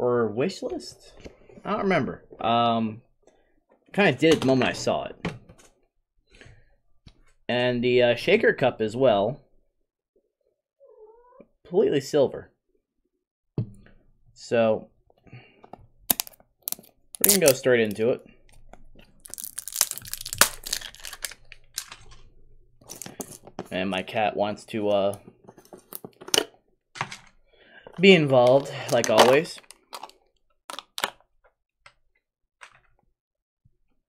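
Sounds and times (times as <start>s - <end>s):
small hard objects clicking: 16.1s - 18.0s, 19.2s - 22.1s, 22.9s - 23.4s, 28.4s - 31.2s
items clicking and tapping on desk: 20.3s - 22.2s, 22.8s - 23.7s, 25.2s - 27.4s, 28.4s - 31.3s.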